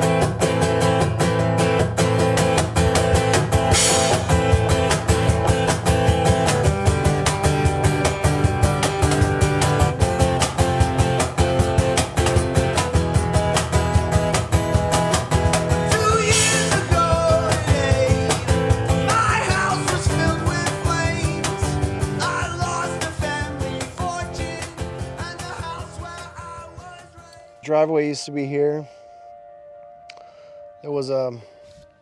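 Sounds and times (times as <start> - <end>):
acoustic guitar strummed fast: 0.0 - 27.2
person singing: 15.7 - 27.6.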